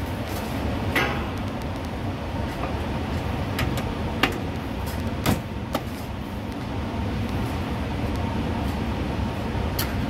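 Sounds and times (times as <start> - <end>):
low mechanical rumble: 0.0 - 10.0.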